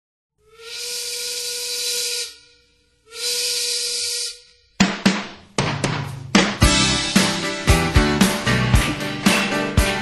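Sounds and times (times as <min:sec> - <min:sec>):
steam whistle blasts: 0:00.4 - 0:04.8.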